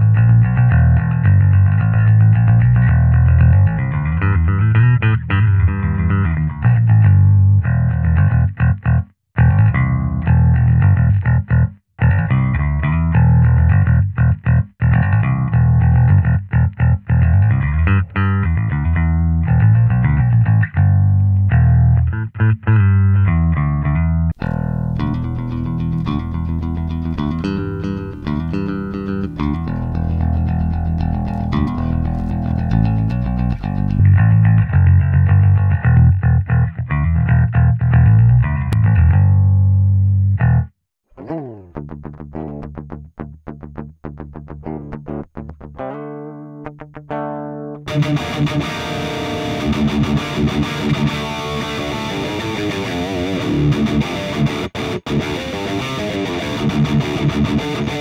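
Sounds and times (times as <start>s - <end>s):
electric bass guitar line: 0.0s - 58.0s.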